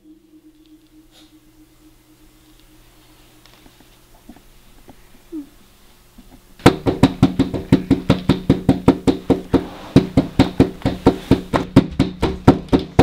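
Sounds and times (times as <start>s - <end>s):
low steady hum: 0.0s - 13.0s
fast loud knocks: 6.6s - 13.0s.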